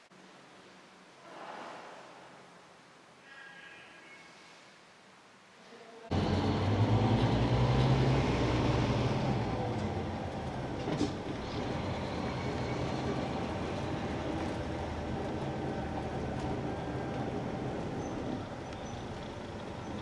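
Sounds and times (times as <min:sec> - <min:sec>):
vehicle engine and road noise: 0:06.1 - 0:20.0.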